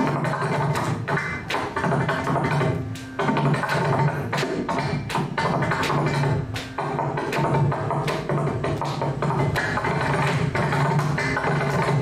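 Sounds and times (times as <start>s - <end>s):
drum strokes with low ringing: 0.0s - 12.0s.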